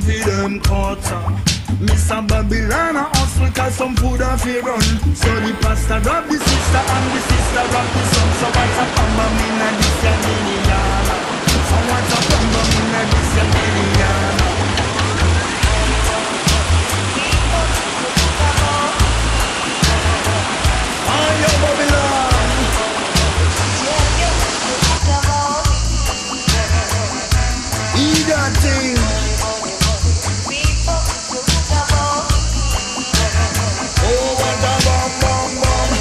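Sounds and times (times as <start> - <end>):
reggae instrumental with bass beat: 0.0 - 36.0
whitewater rapids rushing: 2.7 - 36.0.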